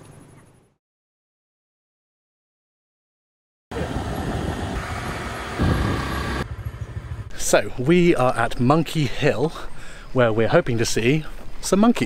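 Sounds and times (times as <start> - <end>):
vehicle passing: 3.7 - 7.3
vehicle engine rumble: 3.7 - 8.0.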